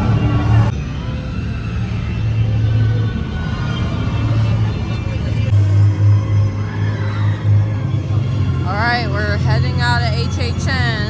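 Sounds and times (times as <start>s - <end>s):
crowd voices: 0.0s - 11.0s
low rumbling drone soundtrack: 0.0s - 11.0s.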